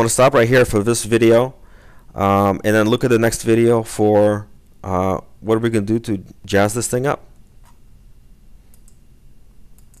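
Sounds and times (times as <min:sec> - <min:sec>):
low steady hum: 0:00.0 - 0:10.0
computer mouse clicks: 0:08.7 - 0:09.0, 0:09.8 - 0:10.0.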